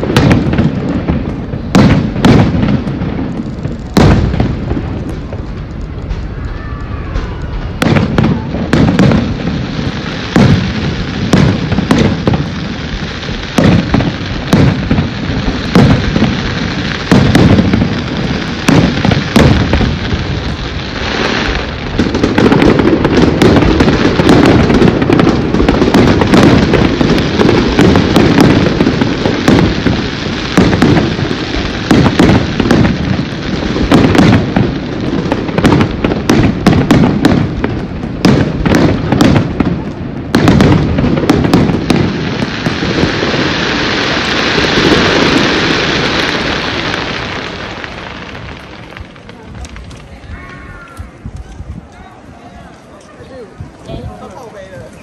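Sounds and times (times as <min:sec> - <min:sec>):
fireworks crackling: 0:00.0 - 0:55.0.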